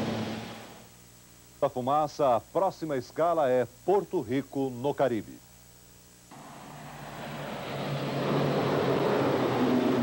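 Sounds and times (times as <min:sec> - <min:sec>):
low steady hum: 0:00.0 - 0:10.0
turboprop aircraft engines droning: 0:06.3 - 0:10.0.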